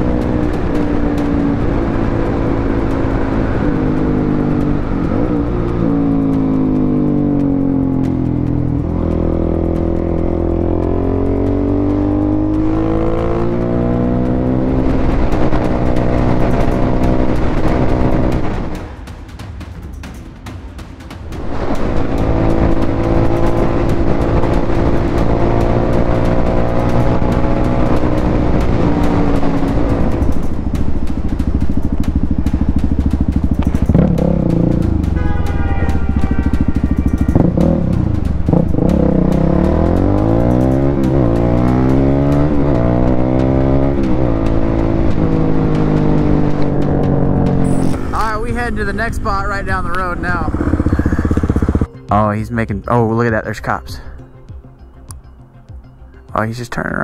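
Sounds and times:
dirt bike engine accelerating: 0.0s - 19.1s, 21.2s - 51.9s.

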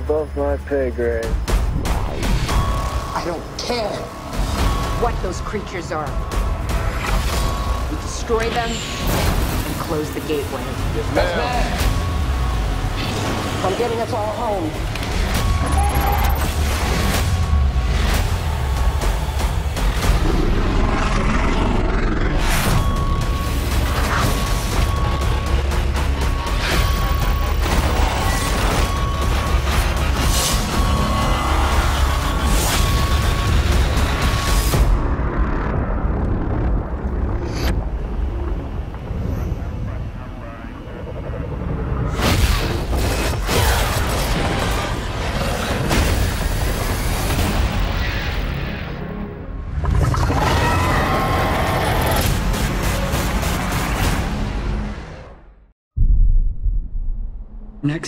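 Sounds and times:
deep bass rumble: 33.1s - 42.2s, 55.9s - 58.0s.

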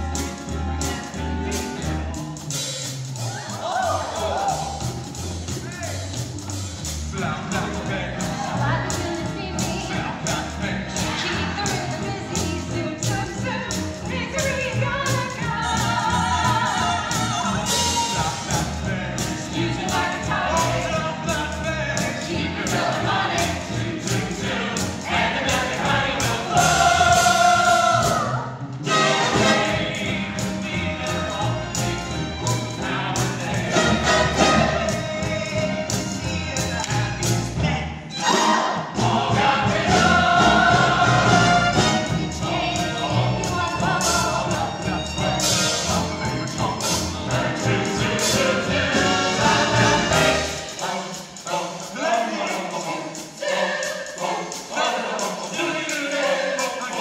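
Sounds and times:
band accompaniment: 0.0s - 57.0s
cast singing: 14.3s - 57.0s.

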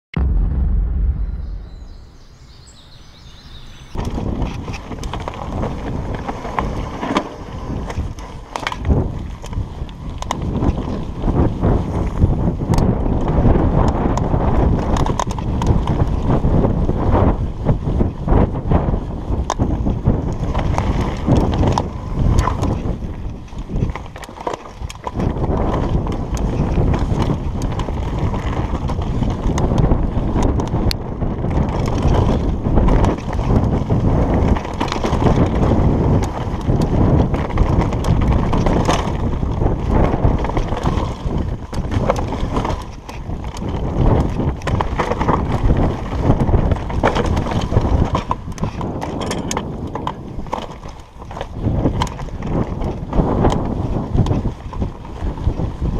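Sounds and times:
wind buffeting microphone: 0.1s - 55.9s
mountain bike rattling over stones: 2.6s - 55.9s.

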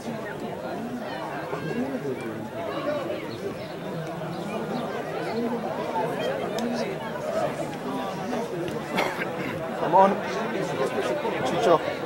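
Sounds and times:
several voices chattering: 0.0s - 12.0s.

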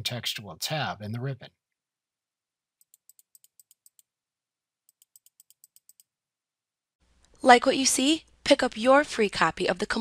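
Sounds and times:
computer mouse clicks: 2.8s - 4.1s, 4.9s - 6.1s.

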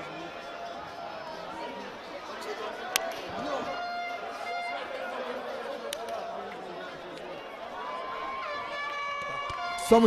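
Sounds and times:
people talking and calling: 0.0s - 10.0s.

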